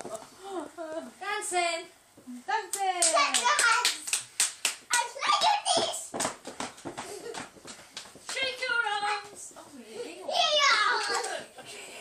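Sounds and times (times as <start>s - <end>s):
dancing feet tapping and thumping: 4.9s - 9.6s.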